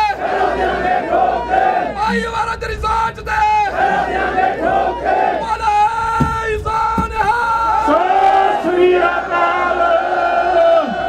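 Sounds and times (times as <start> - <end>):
crowd shouting a slogan: 0.0 - 2.4, 3.7 - 11.0
steady held tone: 0.0 - 8.2.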